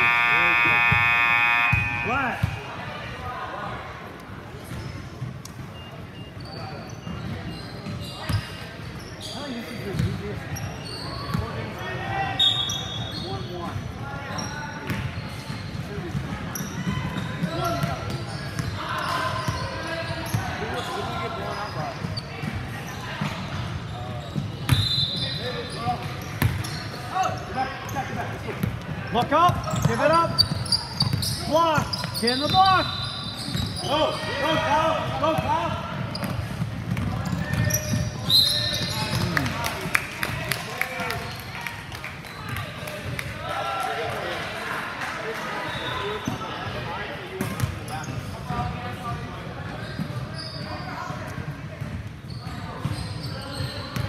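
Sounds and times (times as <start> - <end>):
people calling out: 0.0 - 2.7
sneakers squeaking: 0.0 - 3.1, 4.6 - 39.5, 47.4 - 54.0.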